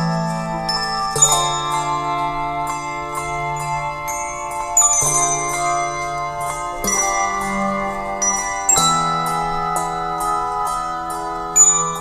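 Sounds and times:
deep bass bells held: 0.0 - 12.0
handbell chords ringing: 0.0 - 12.0.

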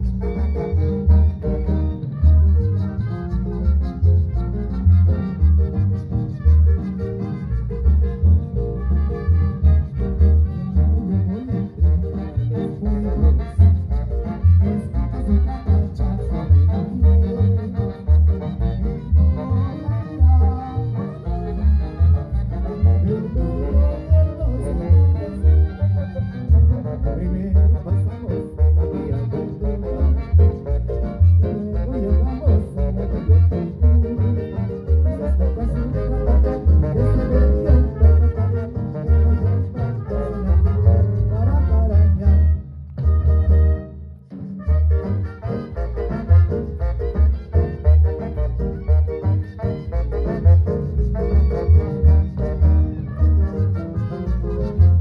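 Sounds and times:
brass band with drums and bass: 0.0 - 55.0.

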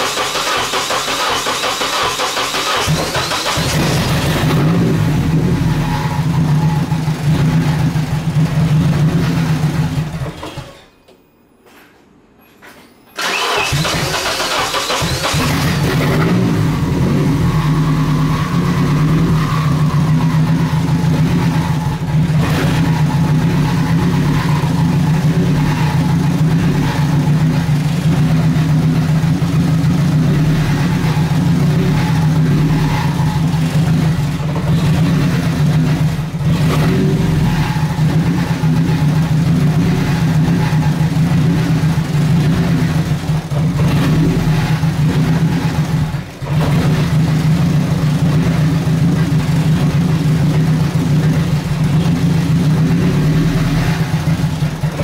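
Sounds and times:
car engine idling: 0.0 - 10.4, 13.2 - 55.0.

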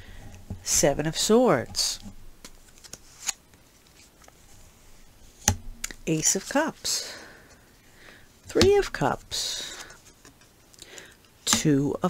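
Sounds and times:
cards sliding: 2.4 - 4.4.

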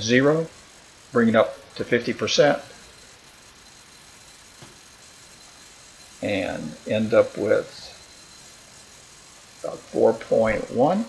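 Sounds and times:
faint room tone hiss: 0.0 - 11.0.

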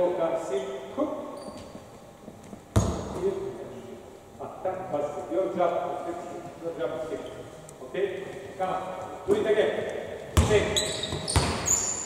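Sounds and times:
basketball bouncing on hardwood: 10.4 - 11.7.

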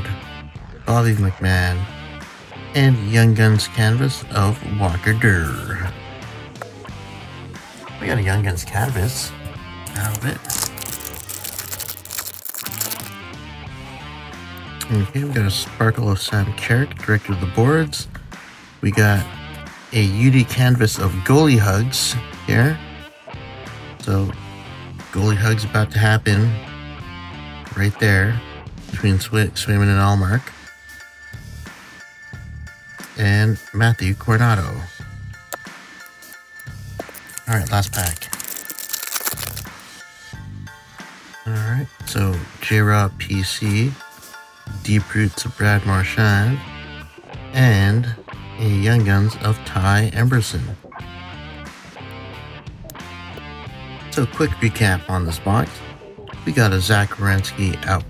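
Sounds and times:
background music: 0.0 - 58.0
foil wrapper crinkling and tearing: 9.9 - 13.2, 36.1 - 40.0.

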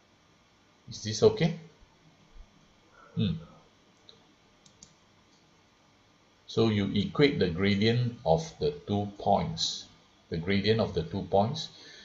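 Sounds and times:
computer mouse clicks: 4.0 - 5.4.

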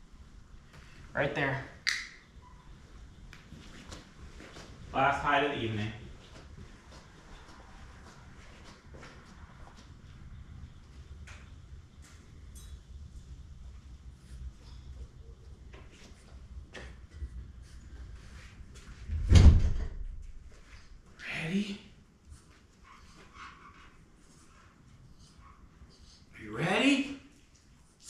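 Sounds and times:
door shutting: 19.1 - 20.1.

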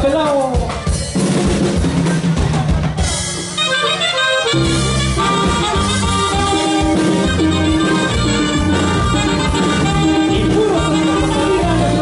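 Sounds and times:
bass: 0.0 - 12.0
drum kit beat: 0.0 - 12.0
accordion notes: 3.3 - 12.0.

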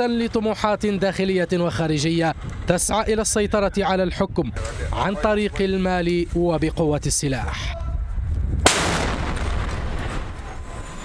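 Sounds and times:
heavy gun shot with echo: 8.7 - 10.4.

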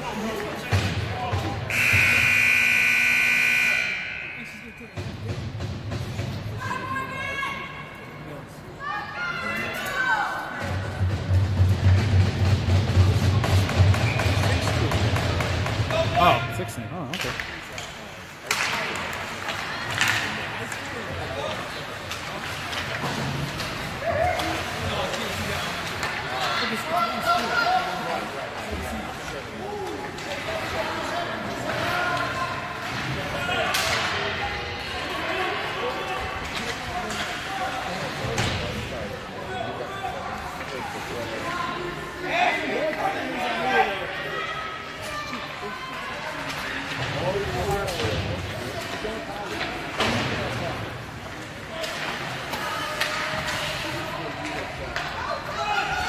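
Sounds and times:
horn signal tone: 1.7 - 4.8
music: 11.0 - 14.4.

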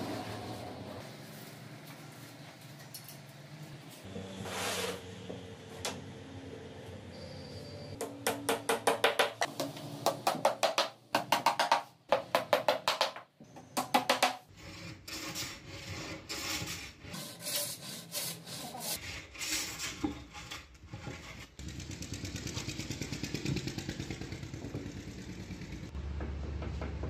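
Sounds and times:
hand plane rasping strokes: 14.5 - 21.6.

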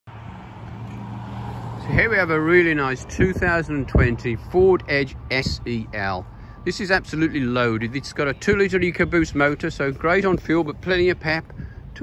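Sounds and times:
man's voice: 1.8 - 12.0.

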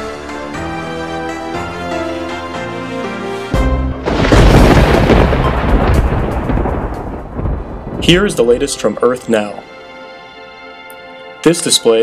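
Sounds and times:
thunder rumbling: 4.0 - 9.0.

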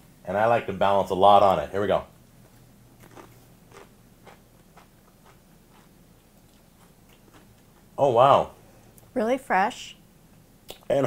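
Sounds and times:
crunching of chip being chewed: 2.9 - 7.9.

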